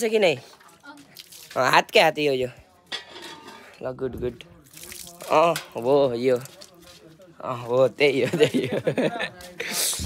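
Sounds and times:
metal kitchenware clinking: 0:02.9 - 0:03.8.

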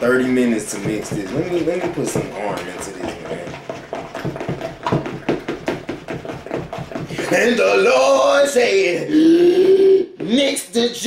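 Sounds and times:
utensil beating batter in plastic bowl: 0:00.0 - 0:09.1.

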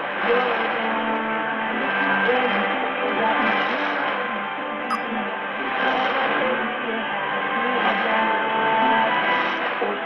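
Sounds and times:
muffled music over am radio: 0:00.2 - 0:10.0.

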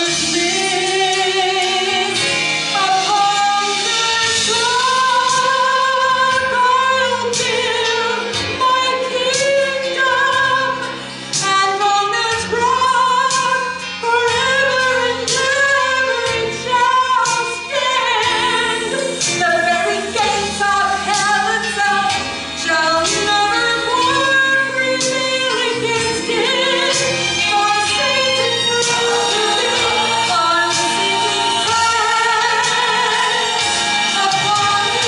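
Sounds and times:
woman singing worship song: 0:00.0 - 0:35.0.

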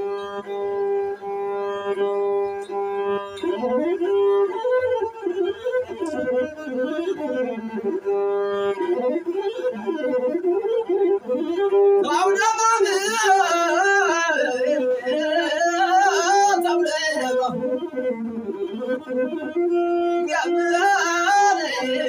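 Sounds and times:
bowed one-string lute melody: 0:00.1 - 0:22.0
man singing: 0:12.0 - 0:18.2, 0:20.0 - 0:22.0.

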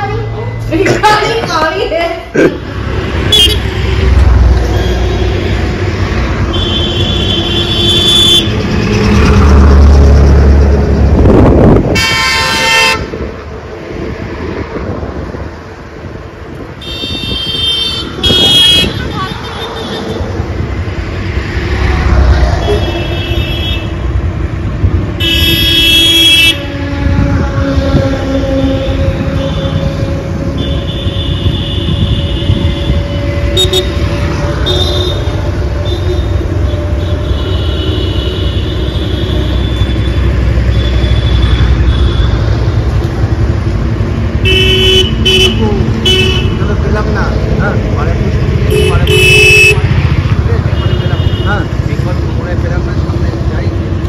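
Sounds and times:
traffic engines rumbling: 0:00.0 - 0:54.0
vehicle horns honking: 0:03.2 - 0:03.9, 0:06.4 - 0:08.6, 0:11.9 - 0:13.2, 0:16.8 - 0:20.2, 0:22.6 - 0:24.1, 0:25.2 - 0:42.8, 0:44.4 - 0:46.8, 0:48.7 - 0:51.9.

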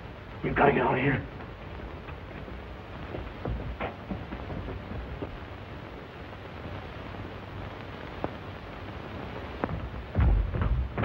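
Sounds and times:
film soundtrack hiss: 0:00.0 - 0:11.0
heavy low rumbling thud: 0:10.2 - 0:11.0.

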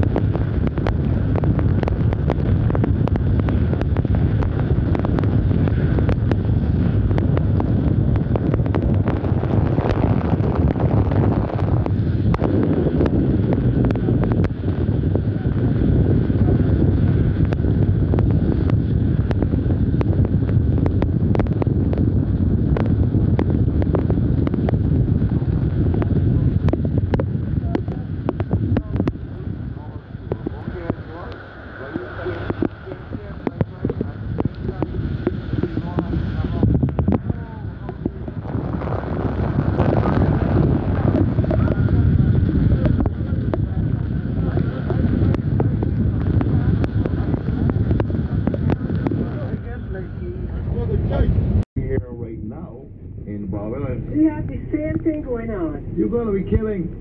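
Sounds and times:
heavy rain ticking: 0:00.0 - 0:57.0
strong wind on microphone: 0:00.0 - 0:57.0.

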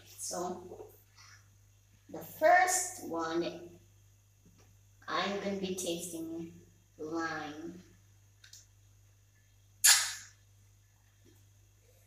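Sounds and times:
child's sharp hissing mouth sound: 0:09.8 - 0:10.4.

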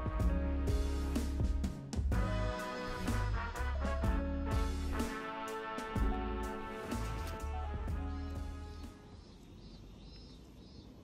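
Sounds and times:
faint street background: 0:03.8 - 0:11.0.

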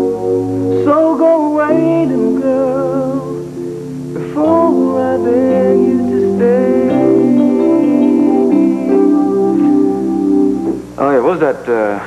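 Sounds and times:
plucked guitar playing: 0:00.0 - 0:11.0.

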